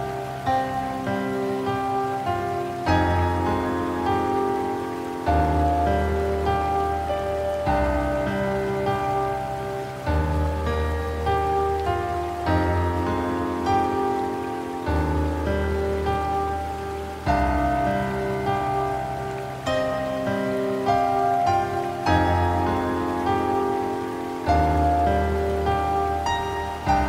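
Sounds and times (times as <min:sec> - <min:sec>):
rain hiss: 0:00.0 - 0:27.0
slow piano music: 0:00.0 - 0:27.0.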